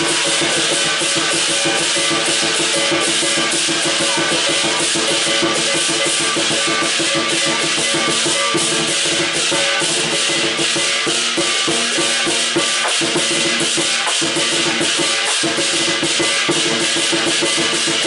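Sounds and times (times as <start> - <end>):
barrel drum beating fast: 0.0 - 18.0
clashing cymbals: 0.0 - 18.0.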